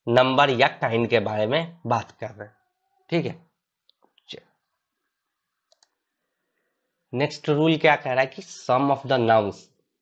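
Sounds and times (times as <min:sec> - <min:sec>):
faint computer mouse clicks: 0:05.7 - 0:06.0.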